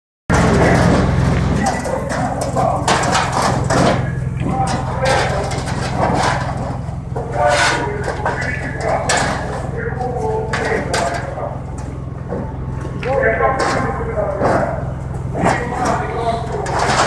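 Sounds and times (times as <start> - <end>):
indistinct voices talking: 0.3 - 17.0
steady low hum: 0.3 - 17.0.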